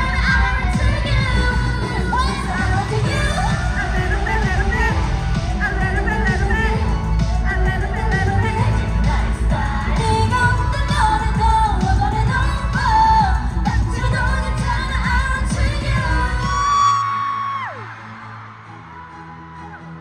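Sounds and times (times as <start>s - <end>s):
pop backing track with heavy bass: 0.0s - 17.8s
girl group singing live: 0.0s - 19.8s.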